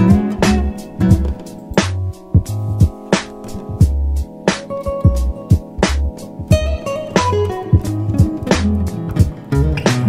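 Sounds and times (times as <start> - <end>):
nylon-string guitar melody: 0.0 - 10.0
kick drum pulses: 2.3 - 3.0, 5.1 - 6.8, 7.7 - 9.4.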